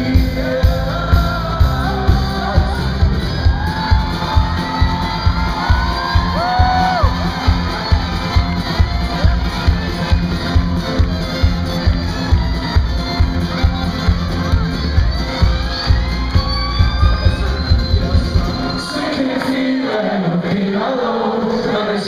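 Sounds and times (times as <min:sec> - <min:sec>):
live band playing: 0:00.0 - 0:20.6
crowd shouting and whooping: 0:02.8 - 0:20.2.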